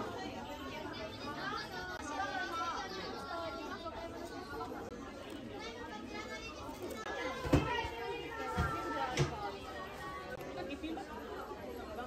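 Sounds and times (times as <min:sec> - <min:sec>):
children's voices: 0:00.0 - 0:11.3
chatter of shoppers: 0:00.0 - 0:12.0.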